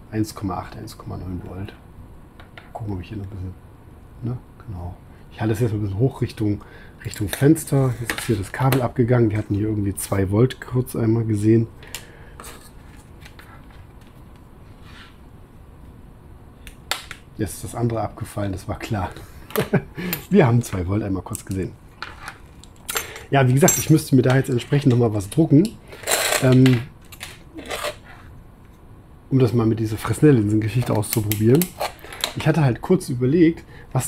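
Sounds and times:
low room noise: 0.0 - 34.0
soft rustle: 12.4 - 15.3.

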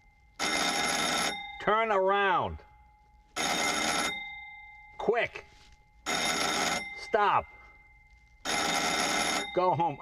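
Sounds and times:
electric signal bell ringing: 0.0 - 10.0.

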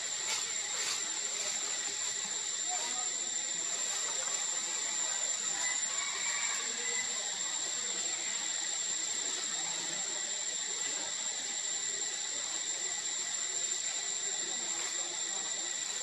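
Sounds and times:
outdoor background hiss: 0.0 - 16.0.

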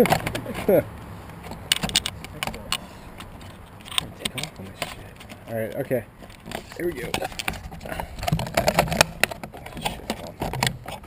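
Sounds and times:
microphone handling clicks and rattling: 0.0 - 11.0.

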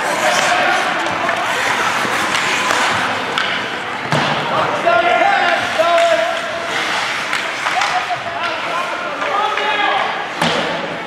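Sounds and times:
people shouting: 0.0 - 3.1
hockey sticks and puck knocking: 0.0 - 10.8.

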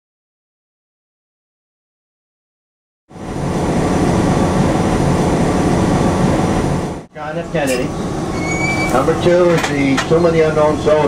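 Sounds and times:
outdoor noise: 3.1 - 11.0
vehicle engine rumbling: 3.1 - 11.0.

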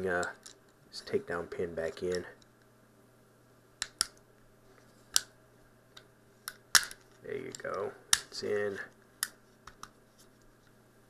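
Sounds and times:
pistol parts clicking: 5.1 - 5.4, 6.0 - 8.6.

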